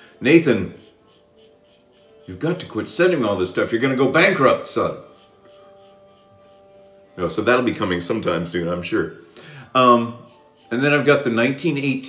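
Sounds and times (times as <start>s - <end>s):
razor scraping stubble: 0.2s - 8.8s, 9.8s - 12.0s.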